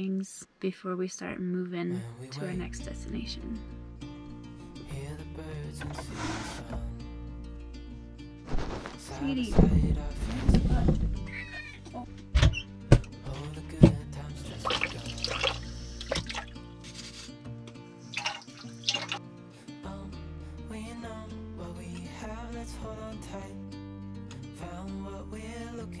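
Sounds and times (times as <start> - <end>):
background music: 2.3 - 26.0
running water: 14.5 - 16.6, 18.0 - 19.2
brush scrubbing: 14.7 - 17.4, 18.1 - 19.2.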